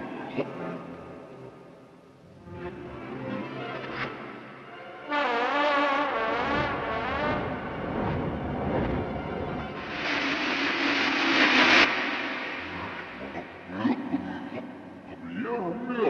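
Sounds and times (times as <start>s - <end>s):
hissing crash-like rush of noise: 9.7s - 15.0s.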